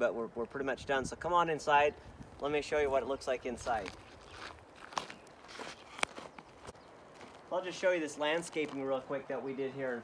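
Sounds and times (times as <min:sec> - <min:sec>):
faint footsteps on gravel: 0:02.2 - 0:10.0.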